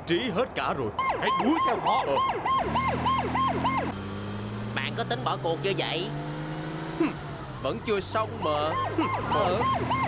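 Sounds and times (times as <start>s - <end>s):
police siren yelping: 1.0s - 4.0s, 8.4s - 10.0s.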